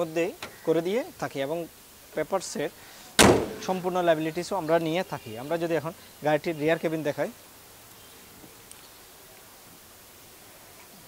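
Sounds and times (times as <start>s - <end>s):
car hood slammed shut: 3.2s - 3.7s.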